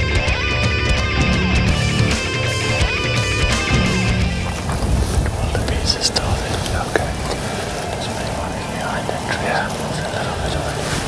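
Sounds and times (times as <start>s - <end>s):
low background rumble: 1.2s - 10.8s
men whispering: 2.0s - 11.0s.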